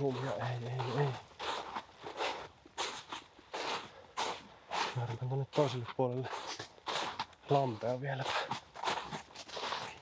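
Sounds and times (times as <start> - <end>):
footsteps crunching on snow: 0.0 - 10.0.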